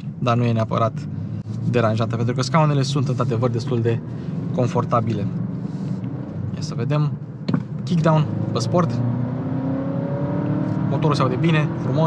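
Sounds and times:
car engine revving: 0.9 - 12.0.

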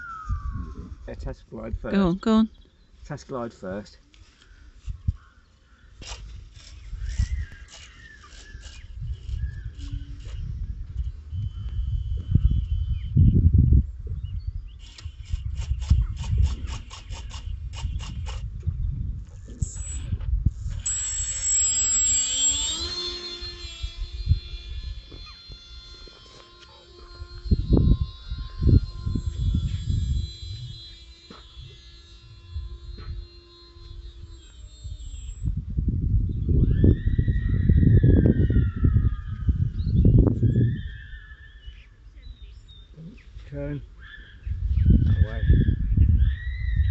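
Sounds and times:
wind rumble on microphone: 0.0 - 2.4, 4.7 - 5.4, 6.0 - 21.5, 22.5 - 26.2, 27.0 - 46.9
electric motor propeller whine: 6.1 - 14.0, 19.3 - 42.0.

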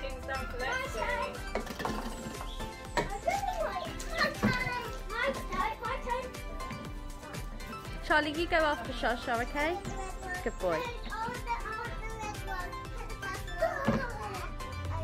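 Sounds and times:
children chattering: 0.0 - 7.9, 9.4 - 15.0
upbeat electronic music: 0.0 - 15.0.

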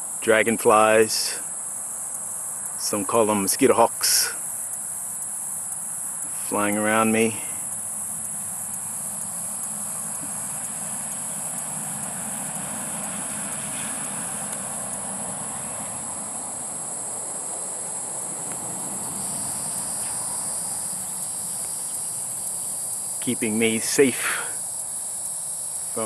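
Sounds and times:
high-pitched insect chorus: 0.0 - 26.0
lower-pitched insect note: 3.8 - 26.0.

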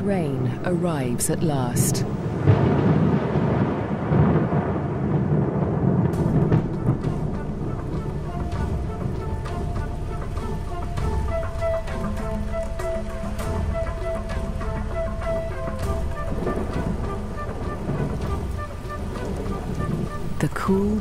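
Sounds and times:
steady rain: 0.0 - 21.0
thunder rumbling: 0.3 - 21.0.

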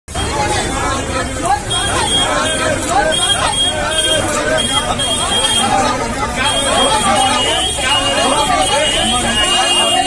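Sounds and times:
people talking over one another: 0.1 - 10.0.

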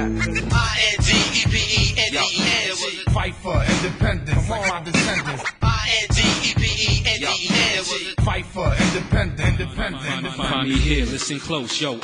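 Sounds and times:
rapped vocals: 0.0 - 12.0
hip hop drum beat: 0.2 - 12.0.

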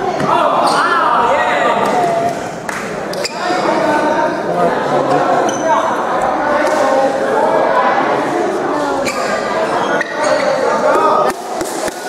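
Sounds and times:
echoing chatter of people: 0.0 - 12.0.

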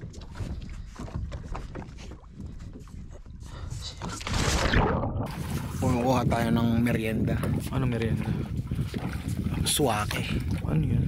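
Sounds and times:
water lapping against boat hull: 0.0 - 11.0
wind on microphone: 0.0 - 11.0.

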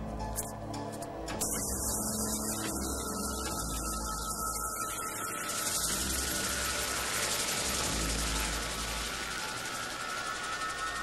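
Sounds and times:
film soundtrack music: 0.0 - 11.0
steady hum: 1.3 - 11.0
high hiss: 1.4 - 11.0
thin steady tone: 1.4 - 11.0.

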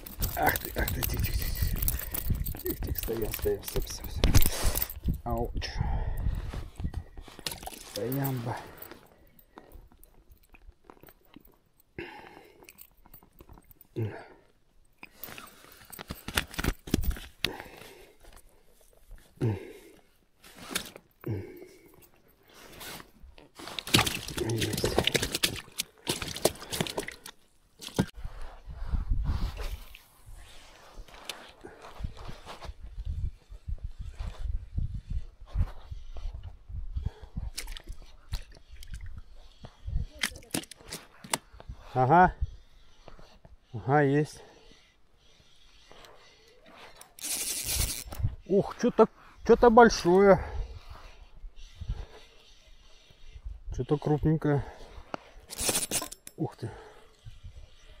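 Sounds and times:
clothing and gear rustling: 0.0 - 5.2, 6.3 - 11.8, 15.1 - 19.4, 20.0 - 21.2, 21.8 - 36.4.

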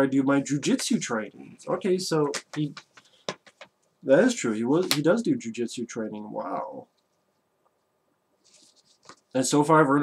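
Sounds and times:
faint short rustle: 8.4 - 9.3.

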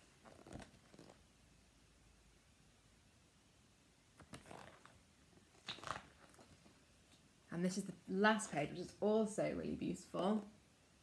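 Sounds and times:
paper pages rustling: 4.2 - 6.8.

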